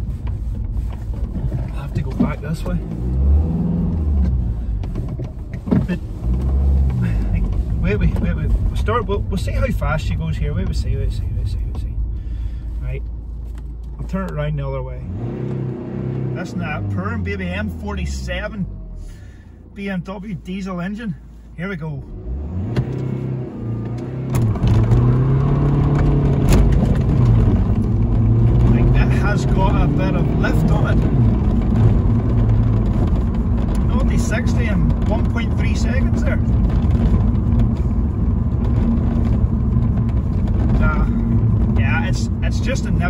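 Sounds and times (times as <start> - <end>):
car engine accelerating: 0.0 - 19.8, 21.9 - 43.0.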